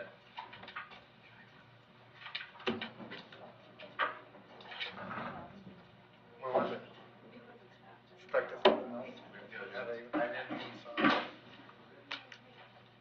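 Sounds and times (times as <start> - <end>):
faint indistinct voices: 3.2 - 13.0.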